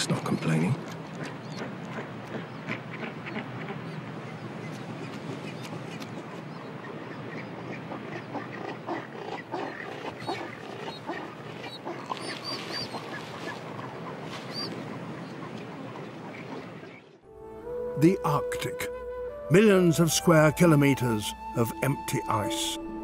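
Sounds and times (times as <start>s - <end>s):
music: 17.3s - 23.0s.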